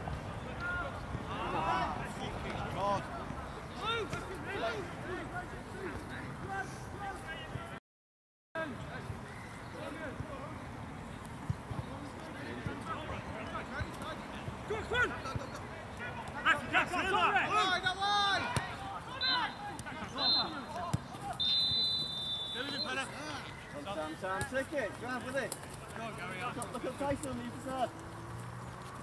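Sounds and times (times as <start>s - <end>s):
players shouting: 0.5s - 7.8s, 12.5s - 28.0s
referee's whistle blasts: 20.2s - 20.7s, 21.4s - 23.1s.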